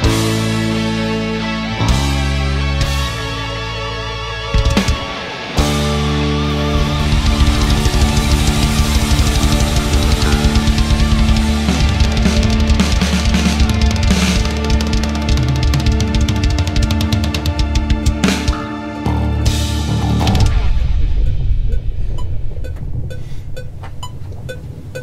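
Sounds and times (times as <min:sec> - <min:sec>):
heavy metal band: 0:00.0 - 0:21.7
fast dense drumming: 0:04.6 - 0:18.8.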